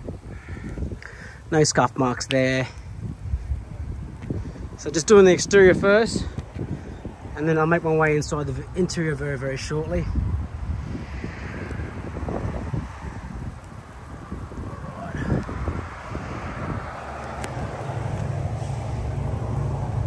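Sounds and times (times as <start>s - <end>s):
light rain hiss: 0.0s - 20.0s
wind buffeting microphone: 0.0s - 20.0s.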